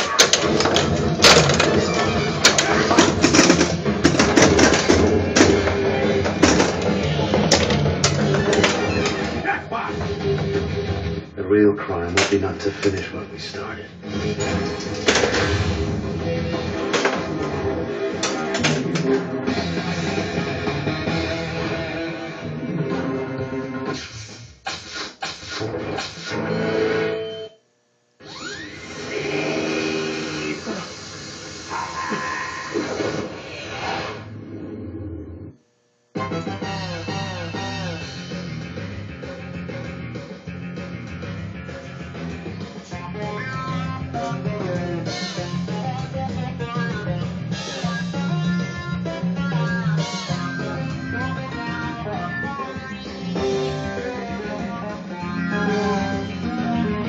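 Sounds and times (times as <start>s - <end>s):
pinball clicks and knocks: 0.0s - 9.2s, 18.2s - 19.3s
pinball game music: 0.0s - 9.4s, 14.0s - 23.7s, 46.8s - 57.0s.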